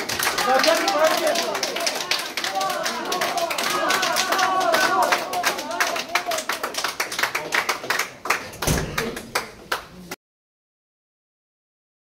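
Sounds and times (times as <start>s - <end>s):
crowd clapping: 0.0s - 10.2s.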